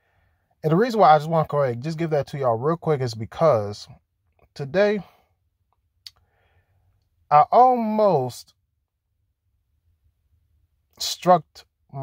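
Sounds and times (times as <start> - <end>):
faint breath: 0.0 - 0.6, 6.2 - 7.0.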